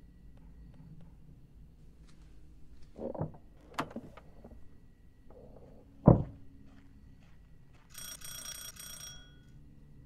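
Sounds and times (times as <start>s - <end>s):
electric doorbell ringing: 8.0s - 9.5s.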